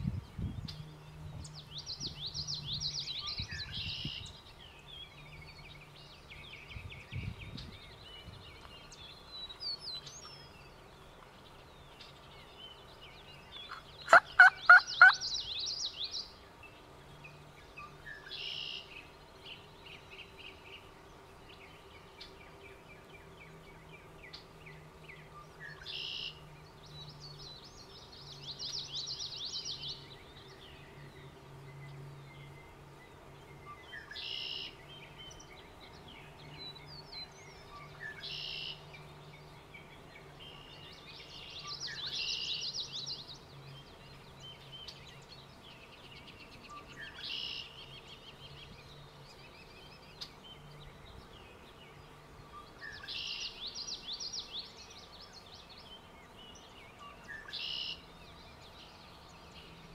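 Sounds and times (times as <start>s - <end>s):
songbirds singing: 0.0s - 59.9s
turkey gobbling: 14.1s - 15.2s.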